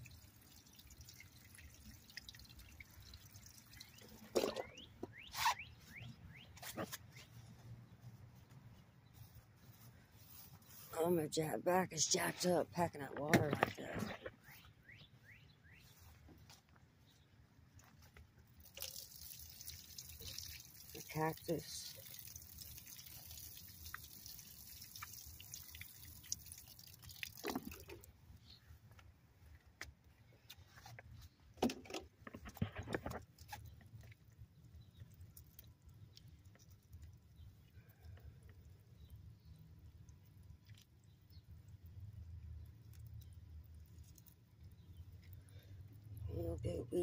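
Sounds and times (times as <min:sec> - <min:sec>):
watering can sprinkling onto gravel: 0:18.6 - 0:28.1.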